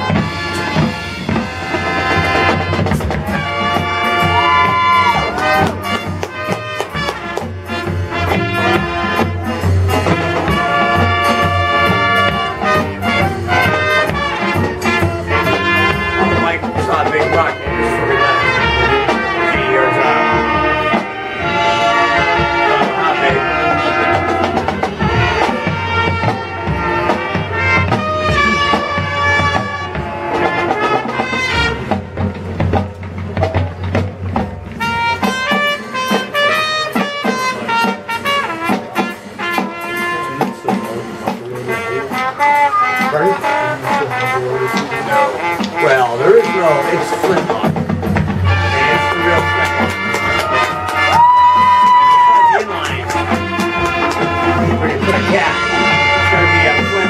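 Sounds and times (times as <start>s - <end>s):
marching band playing jazz: 0.0s - 57.0s.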